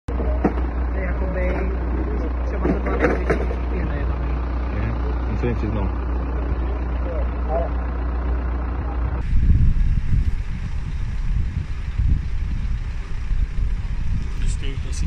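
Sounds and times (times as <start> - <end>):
deep uneven engine rumble: 0.1 - 15.0
low hum of vehicles: 0.1 - 15.0.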